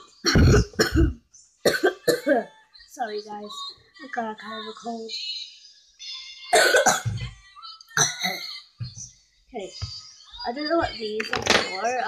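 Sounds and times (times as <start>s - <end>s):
person coughing harshly: 0.2s - 2.4s, 6.5s - 7.2s.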